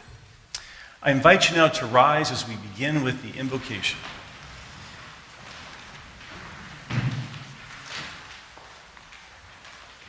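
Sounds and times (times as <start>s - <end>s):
rustle of clothing and shuffling: 3.3s - 10.0s.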